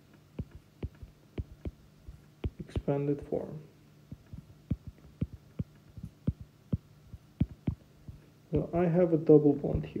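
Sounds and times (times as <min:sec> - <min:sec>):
faint low hum: 0:00.0 - 0:10.0
stylus tapping on tablet screen: 0:00.3 - 0:03.0, 0:04.1 - 0:08.2.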